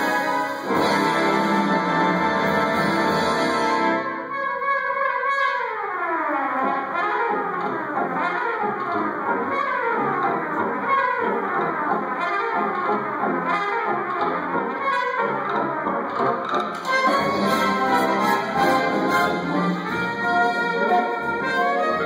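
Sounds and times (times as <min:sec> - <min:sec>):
solo trumpet playing jazz: 0:00.0 - 0:12.9, 0:13.5 - 0:16.0, 0:16.8 - 0:22.0
brass band playing: 0:00.0 - 0:22.0.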